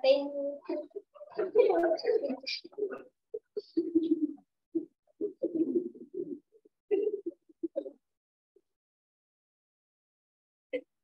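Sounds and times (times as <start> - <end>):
children giggling and laughing: 0.7 - 4.4.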